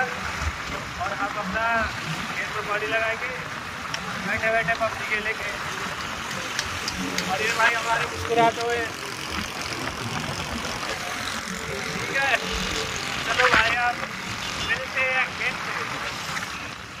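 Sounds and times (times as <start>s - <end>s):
road traffic noise: 0.0s - 17.0s.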